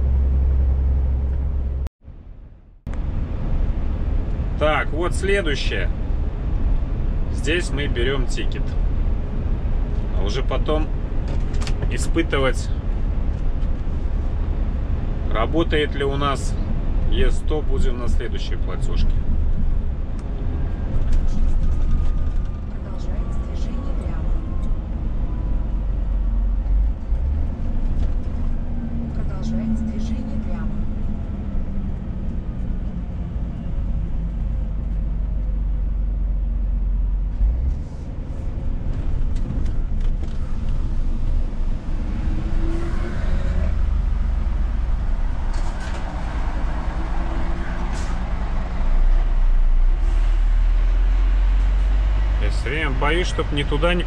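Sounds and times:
truck engine and road rumble: 0:00.0 - 0:54.0.

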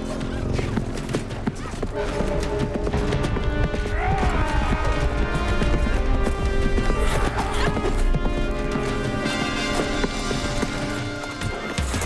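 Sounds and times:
background music: 0:00.0 - 0:12.0
horse hoofbeats: 0:00.0 - 0:12.0.

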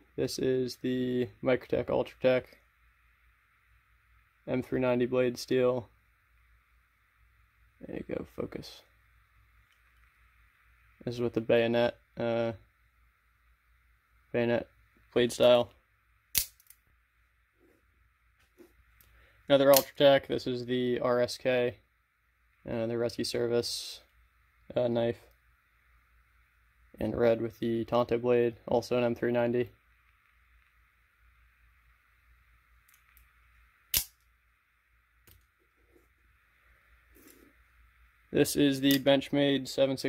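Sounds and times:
knife blade snapping: 0:16.4 - 0:16.8, 0:33.9 - 0:34.1.

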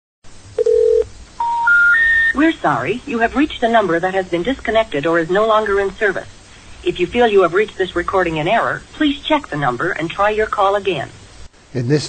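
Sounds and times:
low telephone beep: 0:00.6 - 0:02.4
rising telephone tones: 0:00.6 - 0:02.4.

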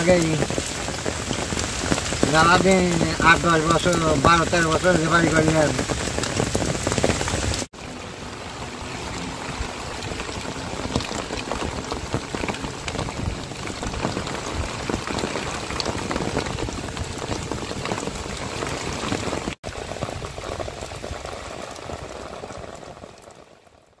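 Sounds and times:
heavy rain on road: 0:00.0 - 0:24.0.

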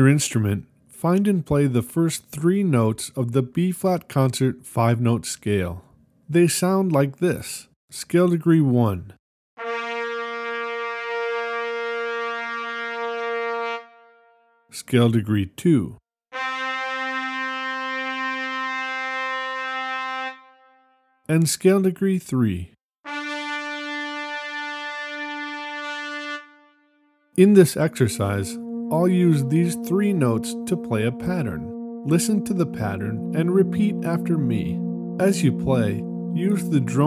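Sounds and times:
brass instrument holding a note: 0:09.6 - 0:14.7, 0:16.3 - 0:21.2, 0:23.1 - 0:37.0.

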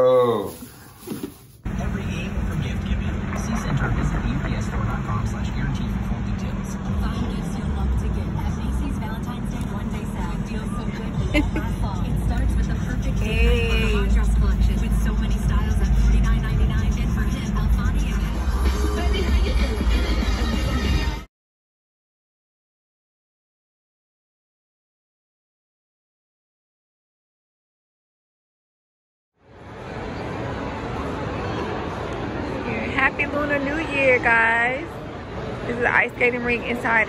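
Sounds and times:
car engine and road rumble: 0:00.0 - 0:21.2
music with vocals on car stereo: 0:01.7 - 0:21.3.

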